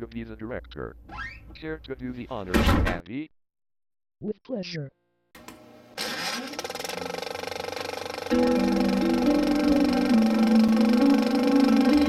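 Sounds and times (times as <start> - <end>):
motor rattling with rising pitch: 6.0 - 12.0.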